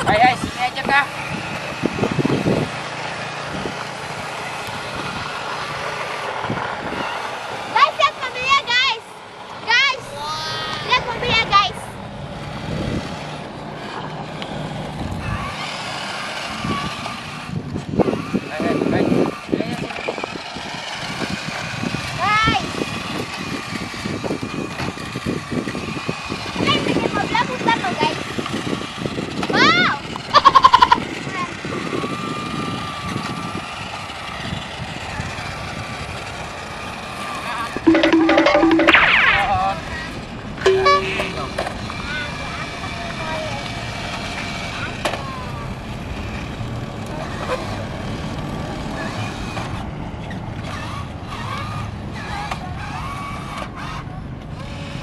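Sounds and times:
toy vehicle motor whir: 12.6 - 37.6, 48.9 - 55.0.

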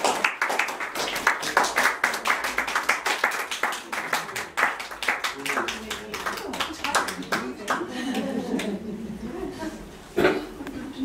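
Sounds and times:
audience clapping: 0.0 - 8.8.

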